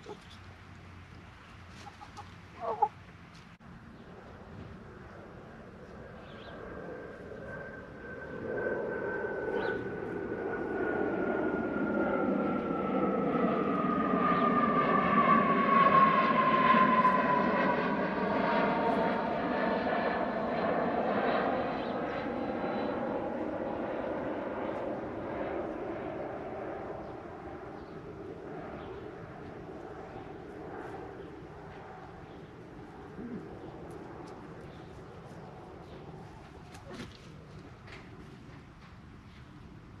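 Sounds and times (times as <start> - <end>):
airplane passing over: 0.0 - 40.0.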